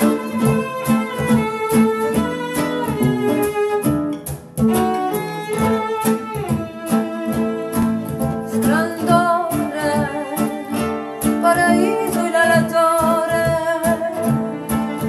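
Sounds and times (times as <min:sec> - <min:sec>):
acoustic guitar: 0:00.0 - 0:15.0
bowed cello: 0:00.0 - 0:15.0.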